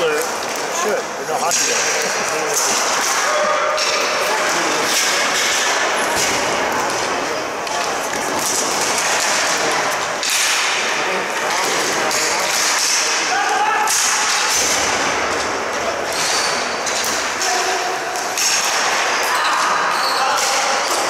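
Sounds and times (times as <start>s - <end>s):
sticks and ball clacking on concrete: 0.1s - 21.0s.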